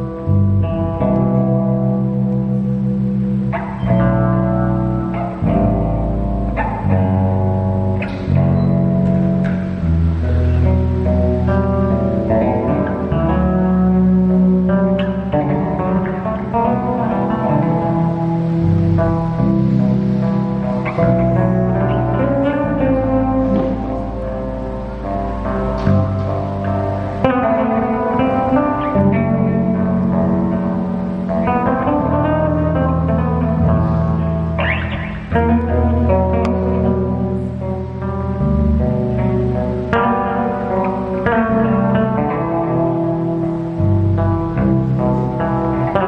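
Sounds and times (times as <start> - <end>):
electric bass guitar plucked: 0.0 - 46.0.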